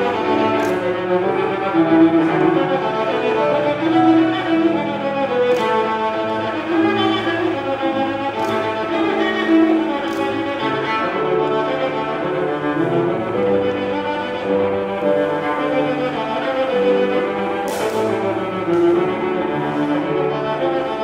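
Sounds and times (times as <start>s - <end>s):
cello melody: 0.0s - 21.0s
grand piano accompaniment: 0.0s - 21.0s.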